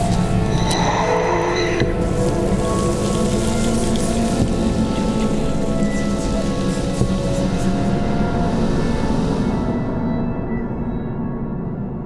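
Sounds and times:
crackling rain-like hiss: 0:00.0 - 0:10.8
low drones: 0:00.0 - 0:12.0.

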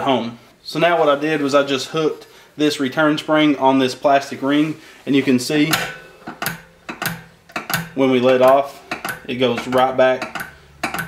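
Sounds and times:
throttle spring metallic clicks: 0:05.7 - 0:11.0.

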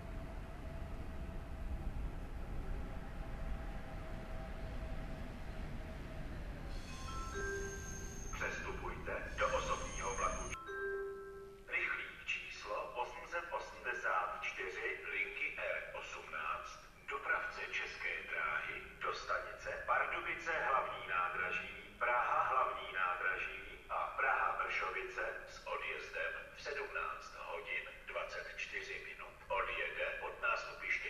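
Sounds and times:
low background rumble: 0:00.0 - 0:07.6
announcement gong chimes: 0:06.8 - 0:11.5
announcement voice: 0:08.4 - 0:10.6, 0:11.7 - 0:31.0.

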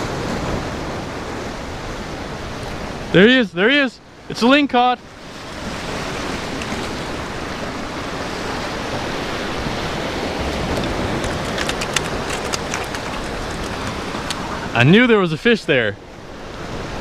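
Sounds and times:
ocean surf washing over rocks: 0:00.0 - 0:17.0.

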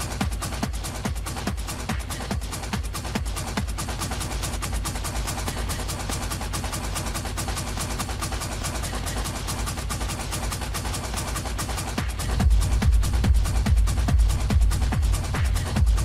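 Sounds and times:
fast hi-hat percussion: 0:00.0 - 0:16.0.

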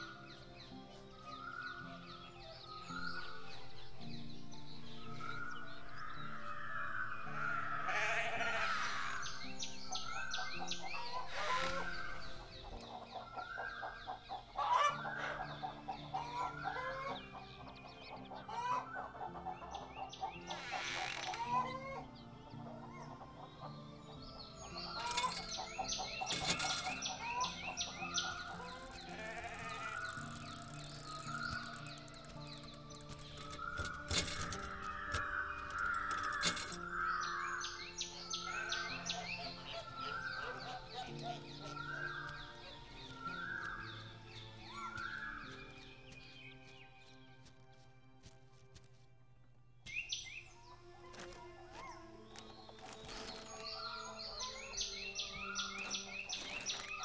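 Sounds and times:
background music: 0:00.0 - 0:57.0
chickens clucking: 0:10.3 - 0:36.8, 0:37.6 - 0:43.2.

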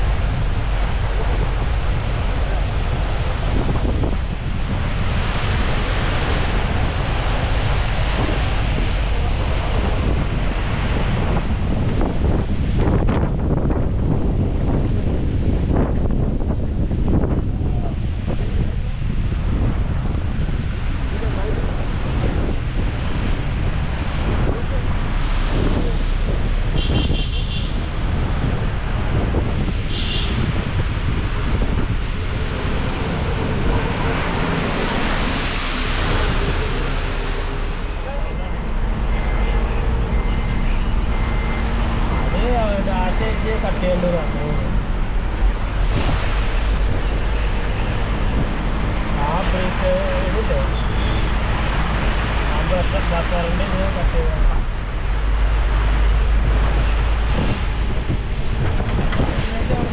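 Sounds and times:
vehicle rumbling along road: 0:00.0 - 0:59.9
wind buffeting microphone: 0:00.0 - 0:59.9.

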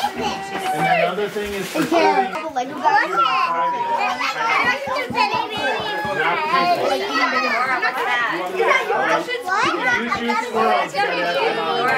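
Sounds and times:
children chattering: 0:00.0 - 0:11.9.

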